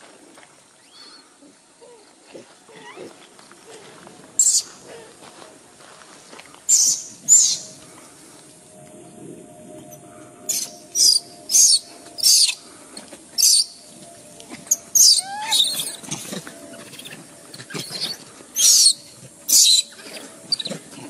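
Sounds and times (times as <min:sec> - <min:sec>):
baby monkey shrill squealing: 0:06.7 - 0:07.7, 0:10.5 - 0:12.6, 0:13.4 - 0:13.8, 0:14.7 - 0:16.1, 0:16.8 - 0:20.7.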